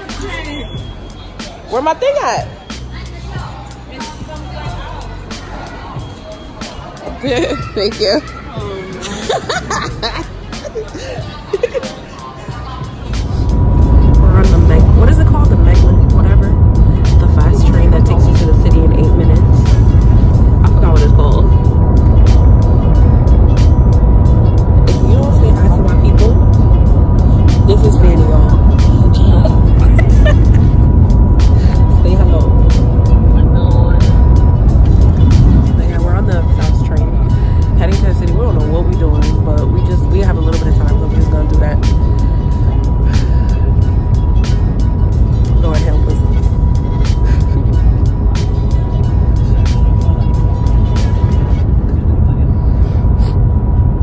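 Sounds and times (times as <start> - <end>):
music: 0.0 - 54.0
voices: 0.0 - 54.0
train cabin low rumble: 9.6 - 54.0
thin steady whine: 12.3 - 54.0.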